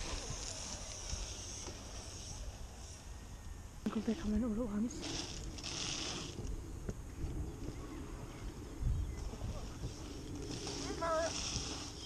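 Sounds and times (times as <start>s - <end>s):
low wind rumble on microphone: 0.0s - 12.0s
steady high hiss: 0.0s - 12.0s.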